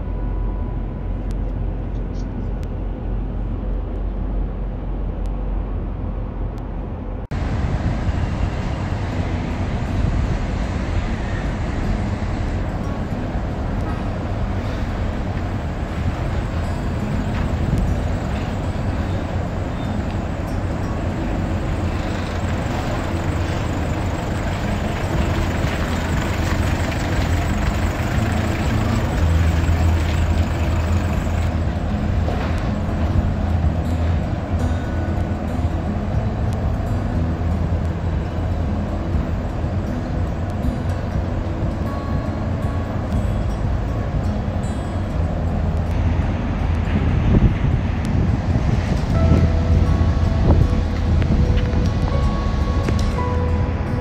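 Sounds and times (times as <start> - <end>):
dull low hum: 0.0 - 54.0
street traffic noise: 0.0 - 54.0
pickup truck engine driving close: 7.3 - 54.0.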